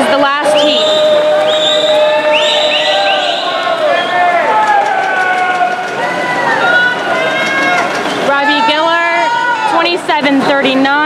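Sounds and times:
people yelling drawn-out cheers: 0.0 - 10.0
crowd noise in pool hall: 0.0 - 11.0.

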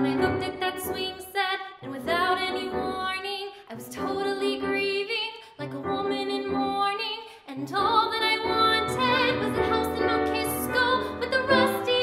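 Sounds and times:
piano accompaniment: 0.0 - 1.2, 7.6 - 12.0
woman singing with vibrato: 0.0 - 12.0.

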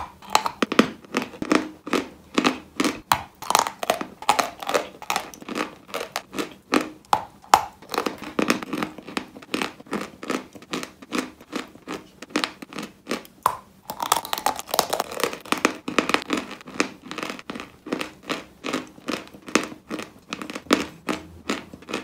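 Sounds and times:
chewing dry crunchy food: 0.0 - 22.0.

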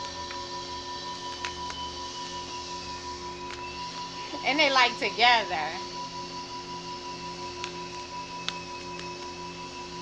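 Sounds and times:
soft ambient music: 0.0 - 10.0.

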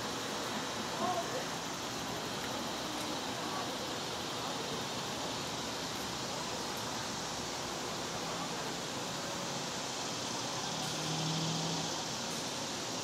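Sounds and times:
outdoor background hiss: 0.0 - 13.0.

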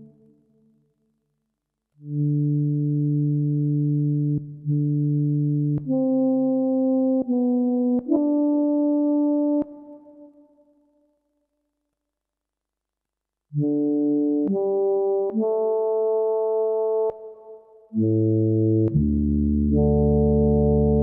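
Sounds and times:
synthesizer pad chords: 13.6 - 21.0.

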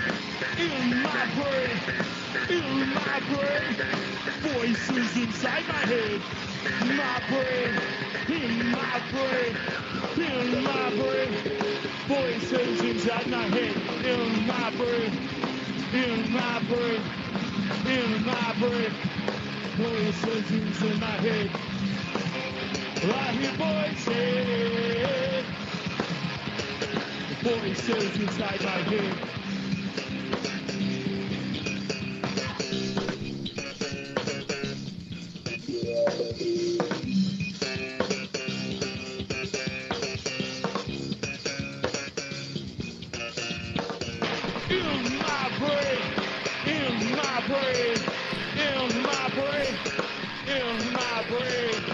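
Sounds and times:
distorted guitar: 0.0 - 51.9
drums: 0.0 - 51.9
live metal band: 0.0 - 51.9.

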